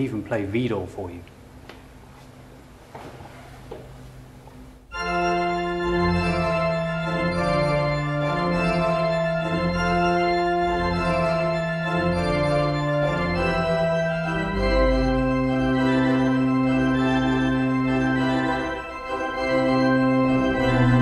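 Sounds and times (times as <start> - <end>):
pipe organ chords: 4.8 - 21.0.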